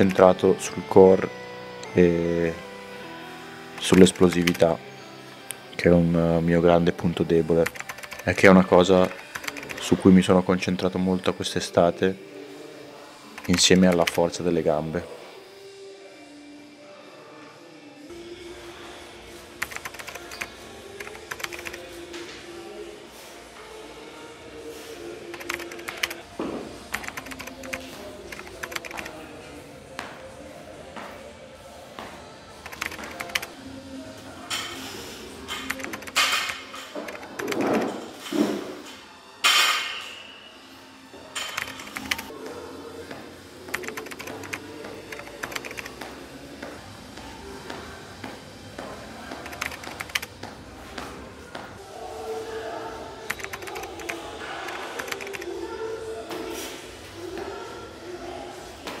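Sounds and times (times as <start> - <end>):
soft background music: 0.0 - 59.0.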